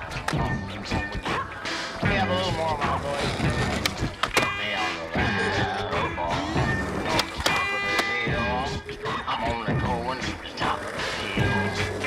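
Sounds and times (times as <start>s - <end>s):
music soundtrack: 0.0s - 12.0s.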